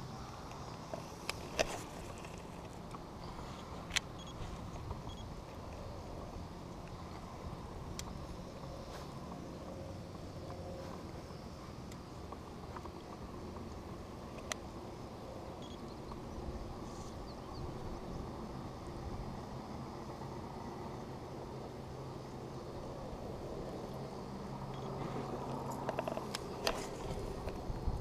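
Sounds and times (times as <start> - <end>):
faint low hum: 0.0 - 28.0
wind and water noise: 0.0 - 28.0.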